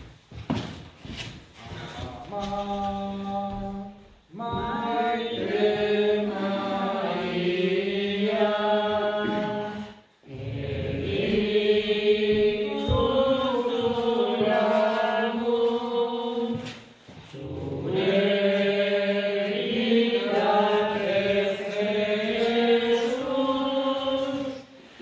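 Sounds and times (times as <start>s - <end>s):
voices singing a liturgical chant: 1.7s - 25.0s.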